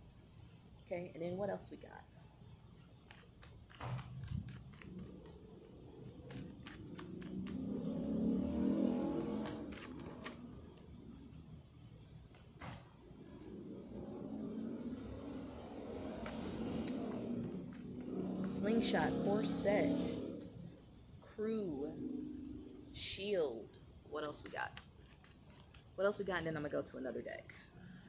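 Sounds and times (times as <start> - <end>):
road traffic: 0.9 - 26.1
cards being shuffled: 2.9 - 14.0, 24.2 - 26.4.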